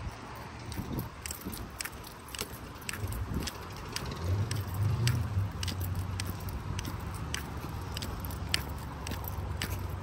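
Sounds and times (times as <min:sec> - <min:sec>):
leash jingling: 0:00.2 - 0:10.0.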